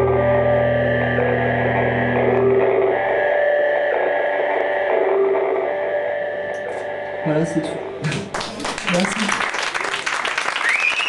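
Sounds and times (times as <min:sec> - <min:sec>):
low bass drone: 0:00.0 - 0:08.2
electric guitar drone: 0:00.0 - 0:08.4
audience clapping: 0:08.0 - 0:11.0.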